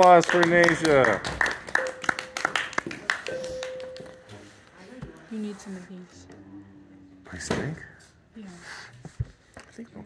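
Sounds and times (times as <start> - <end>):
small group applauding: 0.0 - 4.3.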